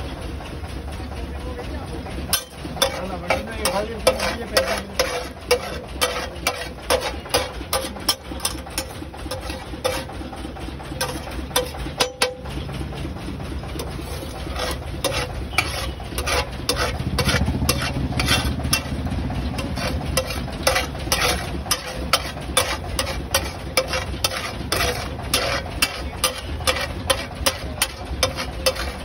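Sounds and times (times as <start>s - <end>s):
low engine-like rumble: 0.0s - 29.0s
metal spatula scraping griddle: 2.2s - 29.0s.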